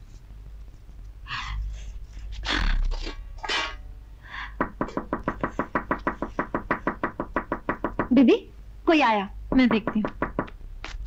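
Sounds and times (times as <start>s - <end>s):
rapid knocking at a door: 4.6s - 8.4s, 9.5s - 10.6s.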